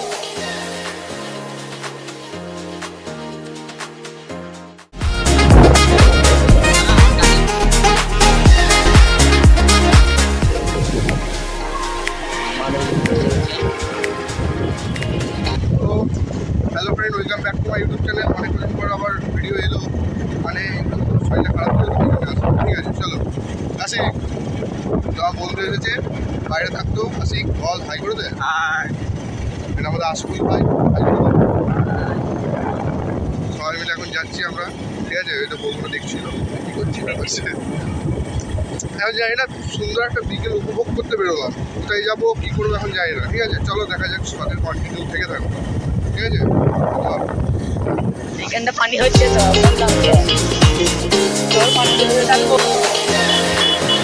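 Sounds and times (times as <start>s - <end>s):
wind rumble on microphone: 5.1s - 9.5s, 10.3s - 50.5s
man talking: 12.4s - 14.0s, 15.6s - 23.2s, 23.8s - 24.2s, 25.1s - 29.0s, 29.8s - 32.9s, 33.5s - 37.7s, 38.8s - 45.5s, 46.1s - 47.3s, 48.4s - 51.4s
motorbike running: 12.7s - 35.2s, 51.0s - 54.0s.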